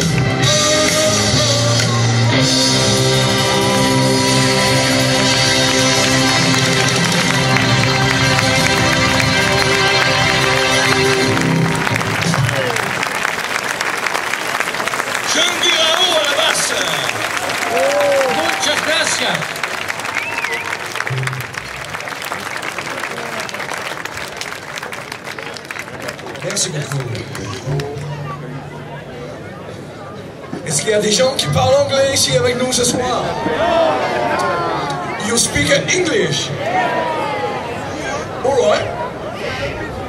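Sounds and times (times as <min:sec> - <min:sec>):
rock band final chord: 0:00.2 - 0:12.8
audience shouting: 0:02.7 - 0:13.4, 0:14.8 - 0:21.2, 0:33.2 - 0:35.4, 0:36.5 - 0:40.0
audience applauding: 0:03.0 - 0:28.2.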